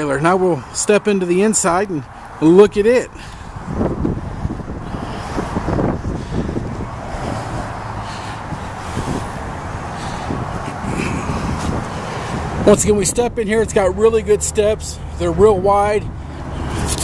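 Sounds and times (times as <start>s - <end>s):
wind rumbling on microphone: 2.0s - 14.0s.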